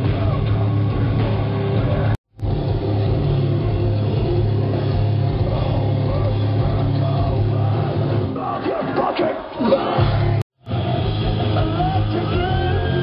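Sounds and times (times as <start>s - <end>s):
metal band playing live: 0.0s - 9.0s, 10.0s - 13.0s.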